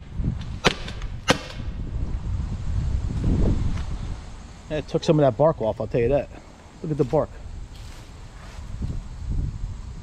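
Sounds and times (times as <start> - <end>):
balls striking tree trunk: 0.3 - 1.8
launcher shots: 0.6 - 1.8.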